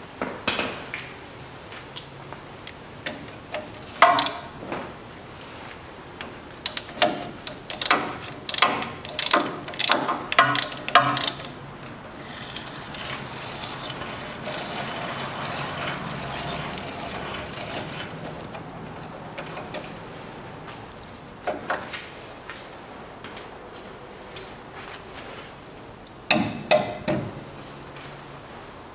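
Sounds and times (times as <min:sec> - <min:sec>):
hand ratchet clicking: 0:03.1 - 0:04.4, 0:06.6 - 0:11.6
mechanical whirring: 0:06.6 - 0:19.9.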